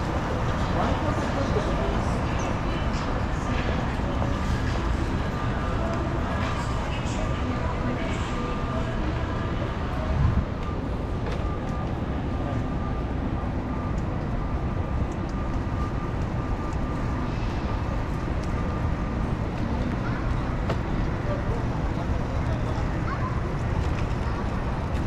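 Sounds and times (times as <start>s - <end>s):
traffic: 0.0s - 25.0s.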